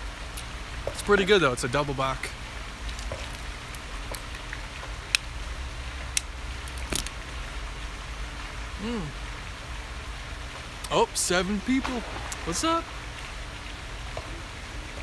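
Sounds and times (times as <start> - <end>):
outdoor background hiss: 0.0 - 15.0
man humming: 8.8 - 9.2.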